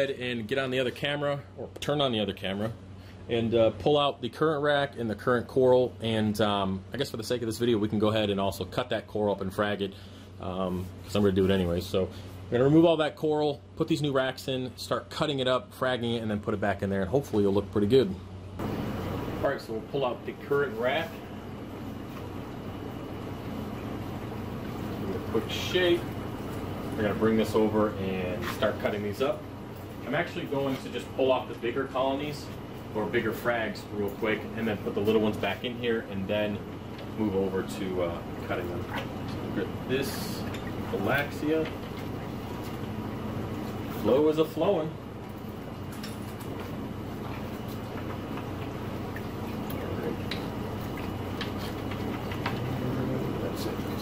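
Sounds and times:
aquarium pumps humming: 0.0s - 54.0s
water circulating: 18.6s - 54.0s
small drips and splashes: 45.2s - 52.8s
water churning in a tank: 46.5s - 54.0s.

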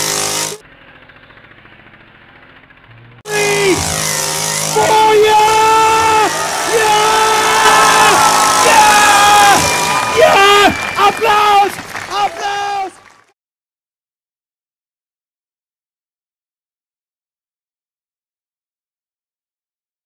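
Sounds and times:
chainsaw engine running: 0.0s - 13.3s
voice-like pitched calls: 3.0s - 13.0s.

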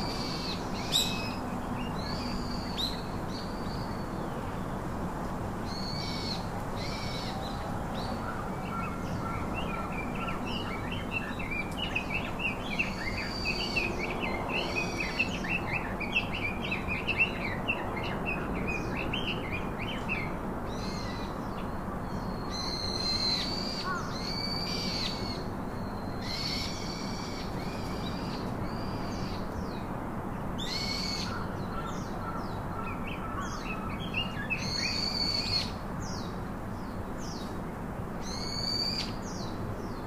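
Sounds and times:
birds calling: 30.6s - 36.2s.

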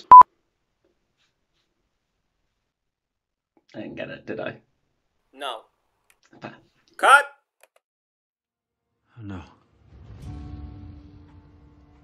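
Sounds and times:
short electronic beep: 0.0s - 0.2s.

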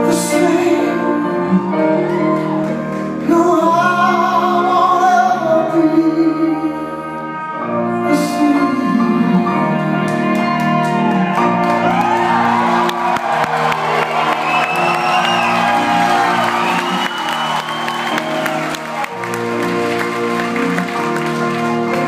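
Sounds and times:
live band with piano: 0.0s - 22.0s
audience cheering and clapping: 1.7s - 3.3s, 10.0s - 22.0s.

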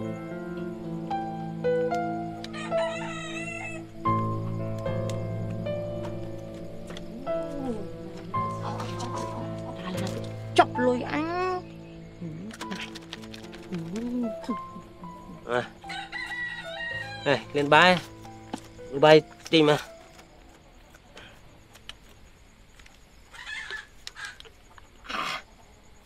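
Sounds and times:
background music of held notes: 0.0s - 20.6s
rooster crowing: 2.4s - 4.0s, 15.8s - 17.6s.

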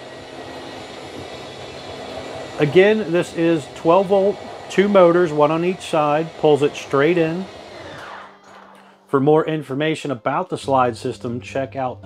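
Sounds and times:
electric motors running: 0.0s - 9.0s.

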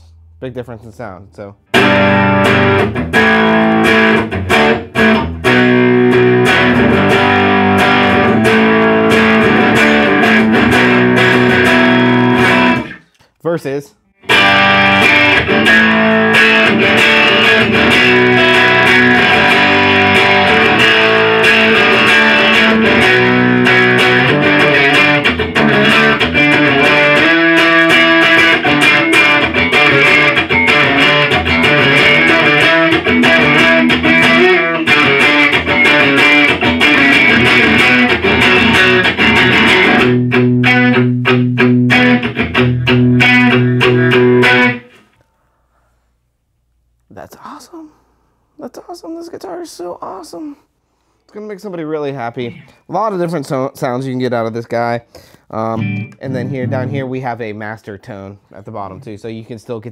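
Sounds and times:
electric guitar chords and riffs: 1.6s - 13.0s, 14.2s - 45.1s, 55.7s - 57.2s.

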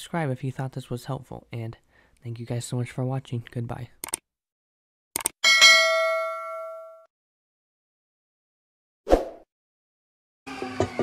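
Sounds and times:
mouse clicks: 4.0s - 4.2s
notification bell ding: 5.4s - 7.1s.

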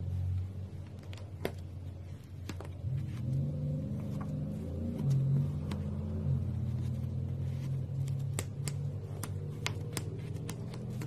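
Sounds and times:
steady low rumble: 0.0s - 9.9s.

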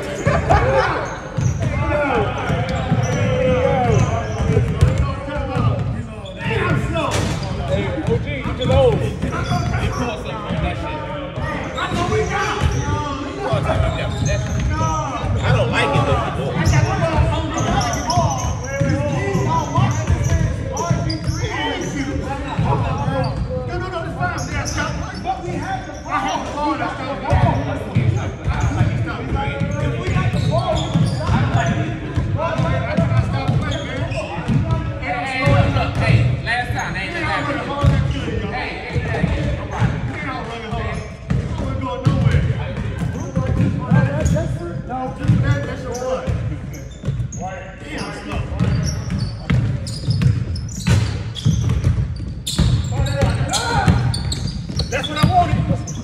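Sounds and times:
players' voices: 0.0s - 56.0s
basketballs bouncing on hardwood: 0.4s - 6.0s, 27.3s - 36.4s, 37.8s - 38.2s, 38.9s - 44.4s, 45.2s - 47.4s, 48.4s - 56.0s.

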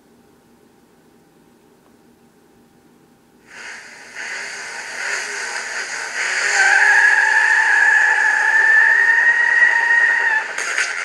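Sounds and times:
car tyres squealing: 6.0s - 11.0s.

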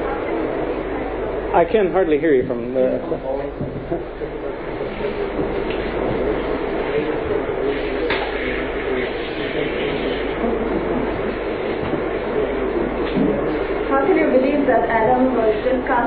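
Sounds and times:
recording hiss and rumble: 0.0s - 16.0s.

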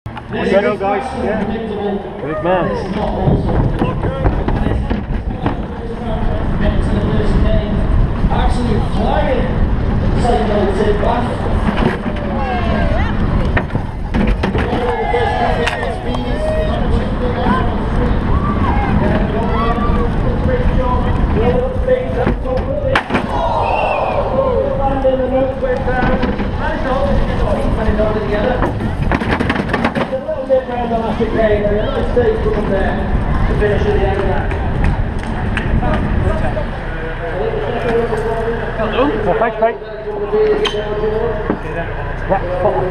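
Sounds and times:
people calling and shouting: 0.1s - 42.9s
cart wheels rumbling: 0.8s - 42.9s
wind buffeting microphone: 2.6s - 36.9s
cart jolting knocks: 3.0s - 6.2s, 11.4s - 12.4s, 13.5s - 15.3s, 25.9s - 27.3s, 27.9s - 30.3s
wind on microphone: 31.4s - 36.7s.

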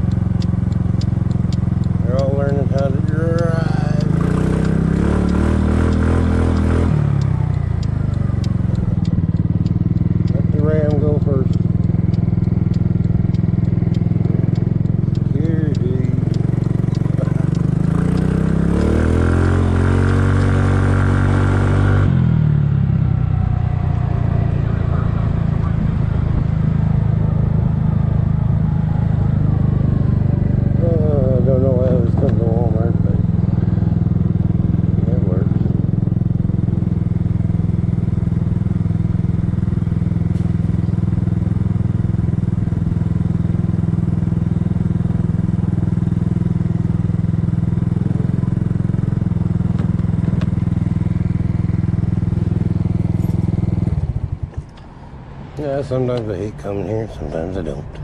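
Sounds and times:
scooter engine running: 0.0s - 58.0s.

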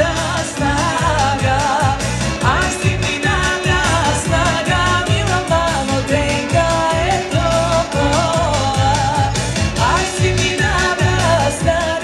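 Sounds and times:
woman singing pop-folk song: 0.0s - 12.0s.

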